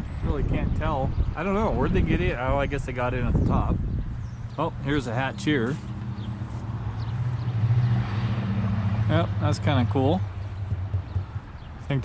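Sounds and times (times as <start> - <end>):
low engine hum: 3.3 - 12.0.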